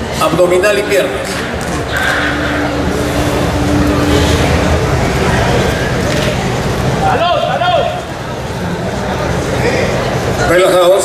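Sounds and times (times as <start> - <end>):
low rumble of crowded hall: 0.0 - 11.0
spectators shouting: 1.4 - 8.0.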